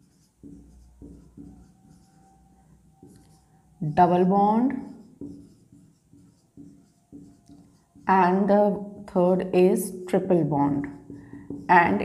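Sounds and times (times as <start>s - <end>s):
marker pen writing on whiteboard: 0.0s - 12.0s.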